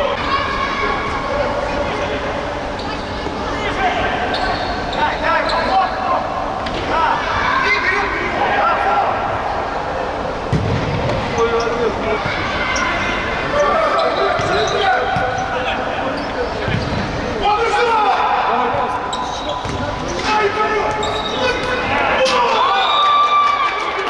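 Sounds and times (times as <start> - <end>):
ball kicked and bouncing on court: 19.6 - 20.2.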